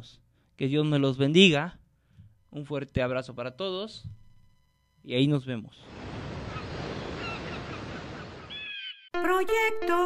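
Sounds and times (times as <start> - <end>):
surf washing onto beach: 5.8 - 8.5
gulls calling: 5.8 - 9.1.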